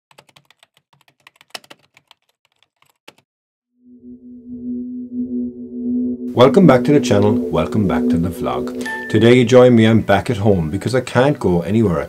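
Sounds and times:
typing on computer keyboard: 0:00.1 - 0:03.2
low held background music tone: 0:05.9 - 0:12.0.

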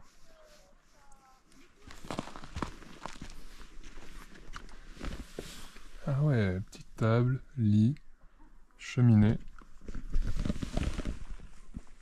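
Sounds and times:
footsteps on grass and mat: 0:01.6 - 0:05.8.

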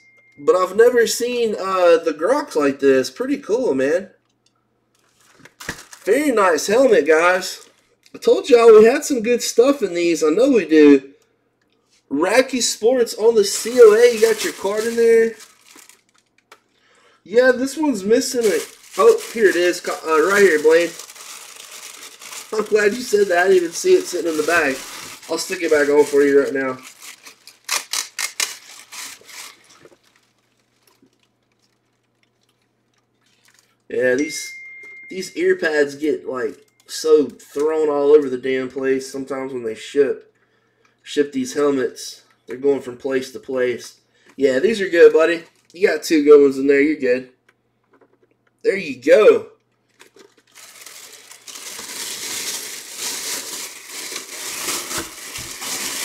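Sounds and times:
plastic bag crinkling: 0:05.0 - 0:08.2, 0:13.0 - 0:16.7, 0:17.3 - 0:33.9, 0:49.8 - 0:56.0.

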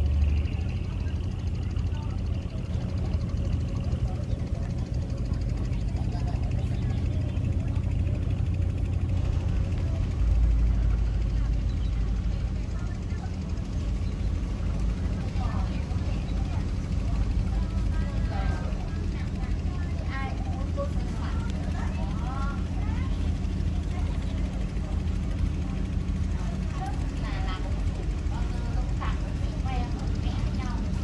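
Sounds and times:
boat engine droning: 0:00.0 - 0:31.0.

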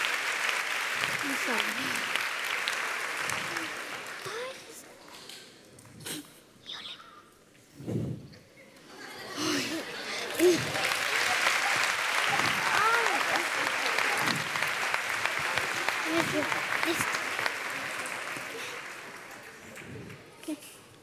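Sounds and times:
audience applauding: 0:00.0 - 0:04.8, 0:09.4 - 0:20.4
voices: 0:08.7 - 0:20.7.

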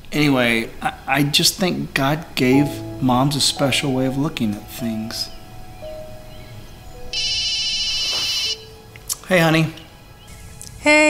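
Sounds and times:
soft background music: 0:00.1 - 0:11.0
mobile phone ringing: 0:06.3 - 0:08.9.

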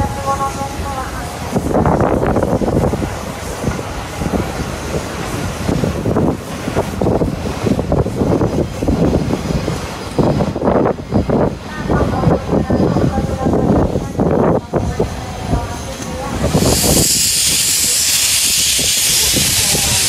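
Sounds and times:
steam locomotive exhaust and hissing: 0:00.0 - 0:20.0.

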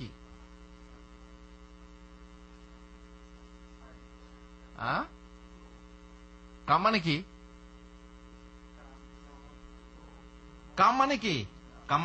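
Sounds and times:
person speaking: 0:00.0 - 0:00.5, 0:08.7 - 0:12.0
electrical mains hum: 0:00.0 - 0:12.0.

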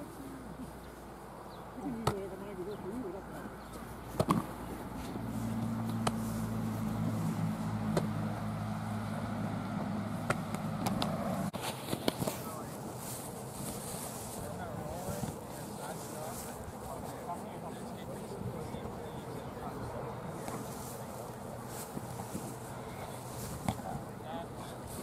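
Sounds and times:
engine humming: 0:00.0 - 0:25.0.

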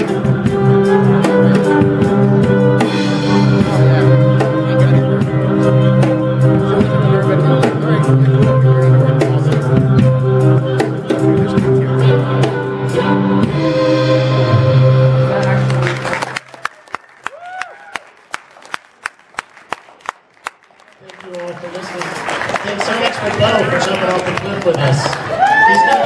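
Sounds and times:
violin bass and drums playing: 0:00.0 - 0:16.4
sparse audience handclaps: 0:15.4 - 0:26.0.

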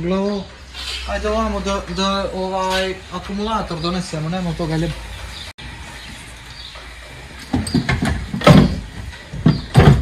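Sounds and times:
loud knocks and clunks: 0:07.4 - 0:10.0.

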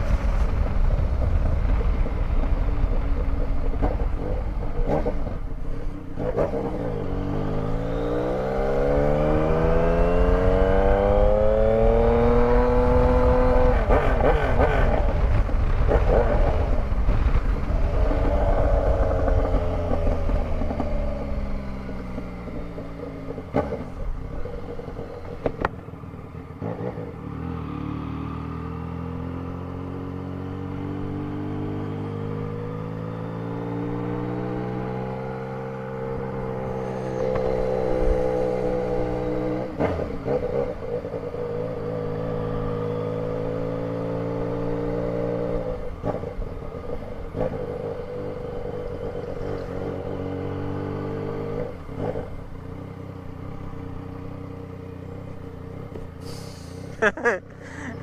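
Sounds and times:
motorcycle engine running: 0:35.6 - 0:56.2.

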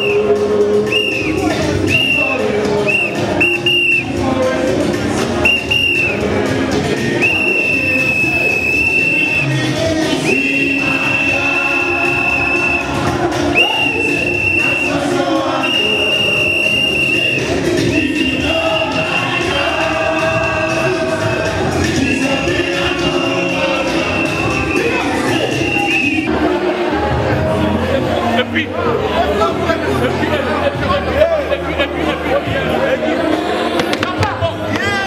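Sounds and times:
loud music with singing: 0:00.0 - 0:35.0
plastic whistle blowing: 0:00.9 - 0:04.1, 0:05.4 - 0:06.2, 0:07.2 - 0:09.6, 0:10.3 - 0:13.0, 0:13.6 - 0:15.0, 0:15.6 - 0:19.6, 0:23.2 - 0:26.3.

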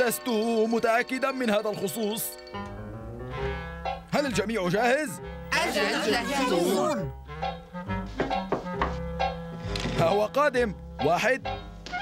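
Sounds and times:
background music with held notes: 0:00.0 - 0:12.0
knocks on wooden door: 0:08.2 - 0:09.0.

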